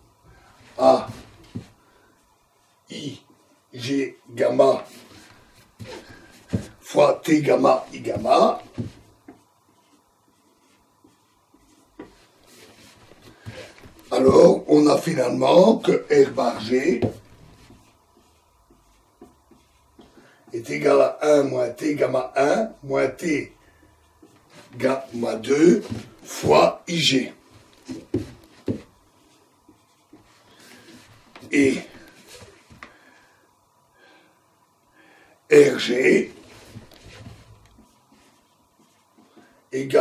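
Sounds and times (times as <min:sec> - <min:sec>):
marker scratching on whiteboard: 0:04.7 - 0:20.8, 0:27.7 - 0:32.6, 0:36.3 - 0:39.4.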